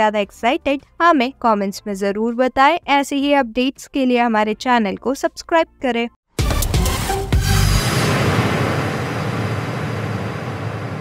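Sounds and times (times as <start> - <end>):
rushing logo sound effect: 6.4 - 11.0.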